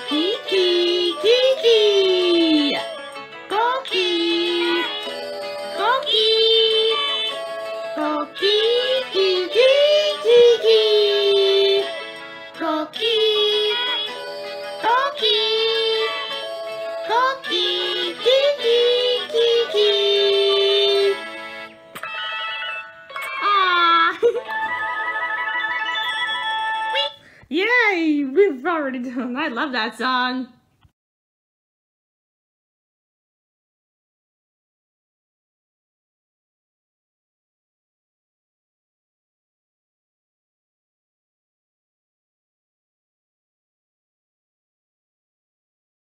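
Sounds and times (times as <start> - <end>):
cartoon characters singing: 0.0 - 21.2.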